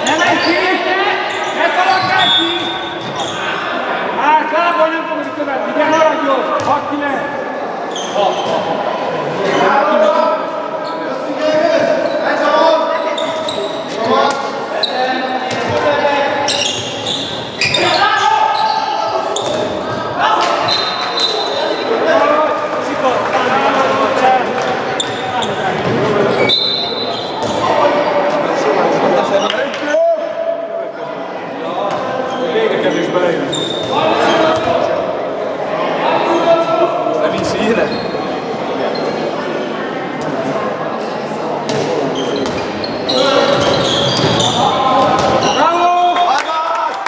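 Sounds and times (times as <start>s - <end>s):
players calling out: 7.7s - 40.0s.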